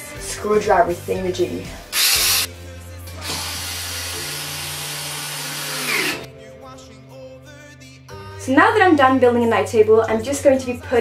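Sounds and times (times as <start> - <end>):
background music: 0.0 - 11.0
electric screwdriver running: 1.9 - 2.5, 3.2 - 6.3.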